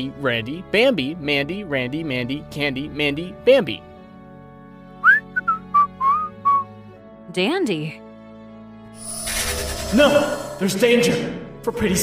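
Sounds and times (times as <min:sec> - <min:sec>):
soft background music: 0:00.0 - 0:12.0
man whistling a tune: 0:05.0 - 0:06.8.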